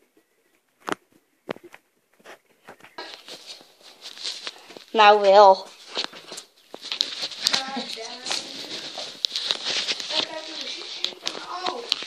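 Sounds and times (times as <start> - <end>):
faint talking voices: 7.4 - 12.0.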